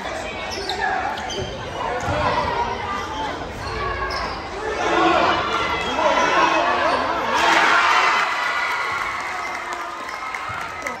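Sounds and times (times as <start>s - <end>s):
echoing voices in hall: 0.0s - 11.0s.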